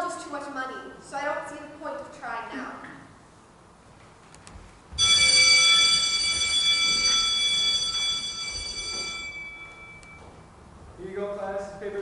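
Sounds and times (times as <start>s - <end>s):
struck bell ringing: 5.0s - 10.5s.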